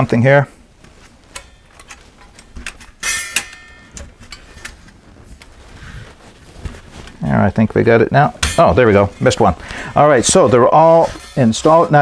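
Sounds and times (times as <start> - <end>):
thin metal plates clinking: 1.3 - 4.8, 8.4 - 12.0.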